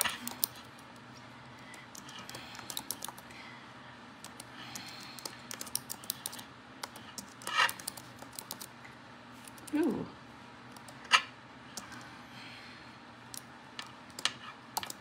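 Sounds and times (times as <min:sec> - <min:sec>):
fingernails typing on keyboard: 0:01.9 - 0:03.2, 0:04.2 - 0:08.7, 0:14.1 - 0:15.0.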